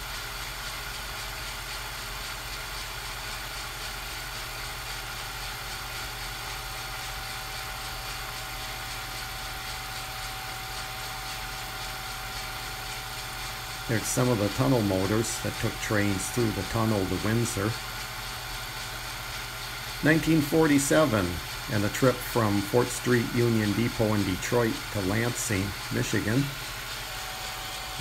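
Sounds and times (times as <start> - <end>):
steady hiss: 12.4 - 27.1.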